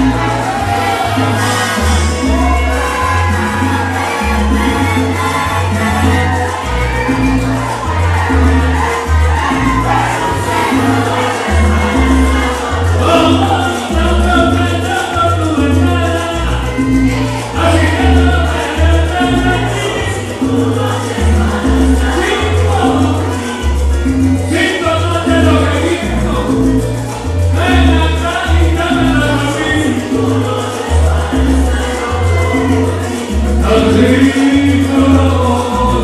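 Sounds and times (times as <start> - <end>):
chorus voices: 0.0 - 36.0
salsa song with singing: 0.0 - 36.0
steady bass line: 0.0 - 36.0.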